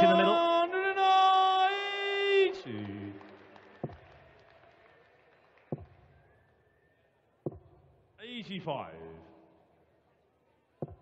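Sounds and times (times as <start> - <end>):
person calling out over a pa: 0.0 - 0.4.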